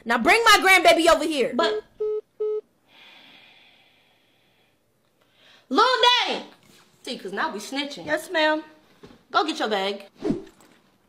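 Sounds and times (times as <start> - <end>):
phone call-ended beeps: 2.0 - 2.6
soft breathy exhale: 2.9 - 5.6.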